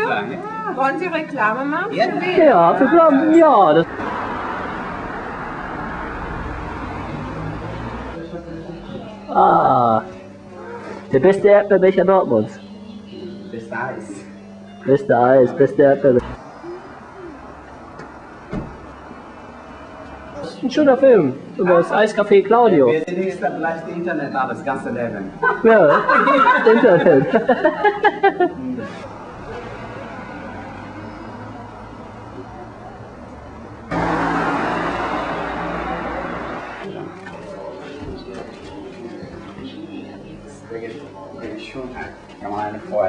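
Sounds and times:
cafe room noise: 0.0 - 43.0
street noise: 0.0 - 43.0
car engine hum: 3.0 - 9.4, 16.1 - 21.6, 29.0 - 36.9
tyre and road noise: 3.4 - 8.4, 16.2 - 21.8, 29.0 - 38.8
faint murmurs: 16.2 - 18.0
faint background voices: 35.4 - 42.9.

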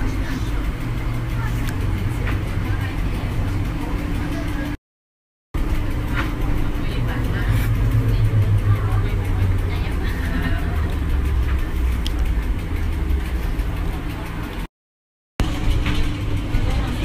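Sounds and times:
trolleybus cabin rumble: 0.0 - 4.8, 5.6 - 14.7, 15.4 - 17.0.

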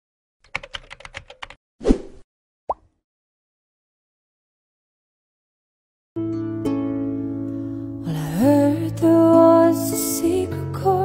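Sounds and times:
keyboard keystrokes clicking: 0.5 - 1.6.

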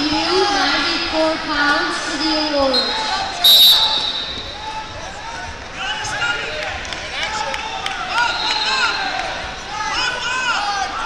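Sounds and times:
voices in a hall: 0.0 - 11.0
referee's whistle blast: 2.7 - 4.6.

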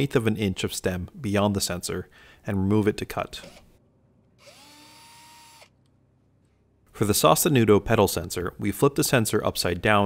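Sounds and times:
power drill motor whine: 4.4 - 5.8.

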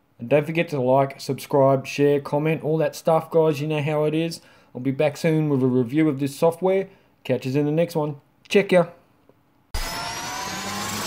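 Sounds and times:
electronic rising whoosh: 9.8 - 11.0.

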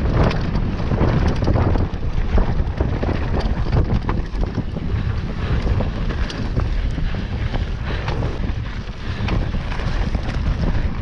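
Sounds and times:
bike clicks and rattles: 0.0 - 11.0
mountain bike rolling on dirt: 0.0 - 11.0
wind buffeting microphone: 0.0 - 11.0.

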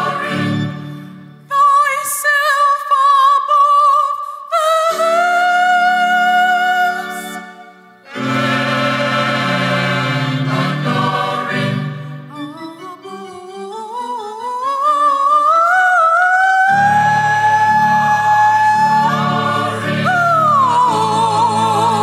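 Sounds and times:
church choir singing: 0.0 - 1.4, 4.6 - 14.2, 16.3 - 22.0.

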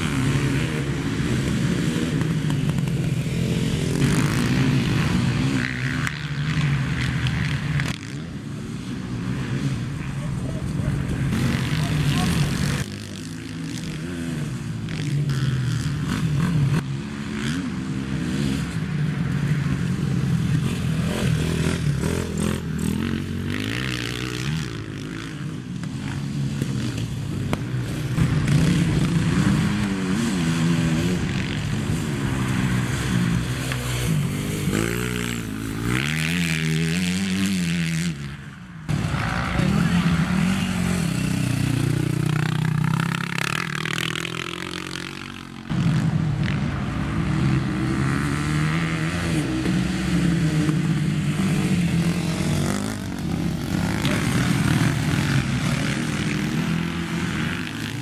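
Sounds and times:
quad engines revving: 0.0 - 58.0.

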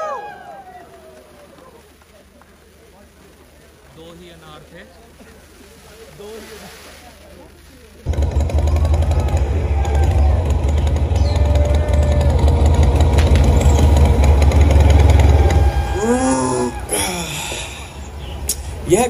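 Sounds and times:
voices: 0.0 - 19.0
low rumble with rapid pulsing: 8.1 - 16.9.

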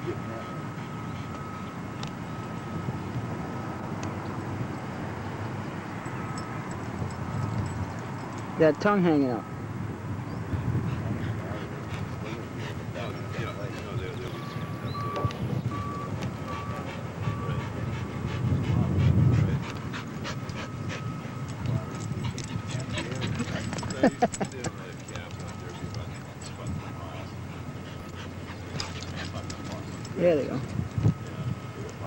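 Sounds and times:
dog panting: 0.3 - 2.1, 10.4 - 31.2
wind rumble: 0.8 - 8.6, 9.4 - 24.3.

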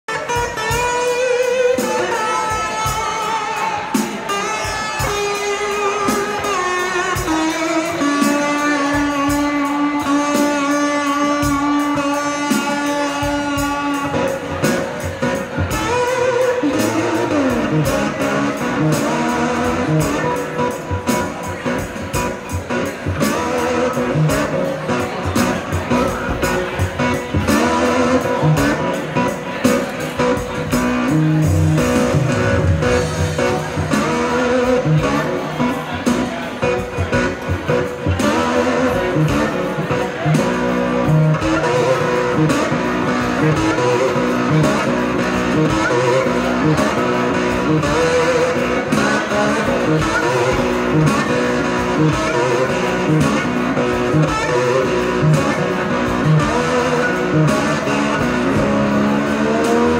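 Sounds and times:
slide guitar blues: 0.1 - 59.9.

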